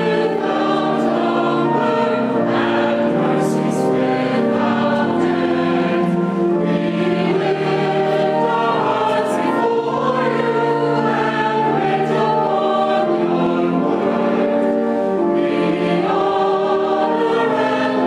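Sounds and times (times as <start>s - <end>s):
choir singing a slow hymn: 0.0s - 18.0s.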